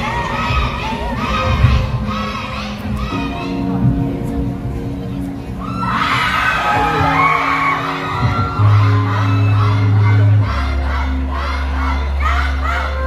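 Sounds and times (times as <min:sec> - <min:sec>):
crowd screaming and cheering: 0:00.0 - 0:04.1, 0:05.2 - 0:13.0
live concert music with deep bass: 0:00.0 - 0:13.0.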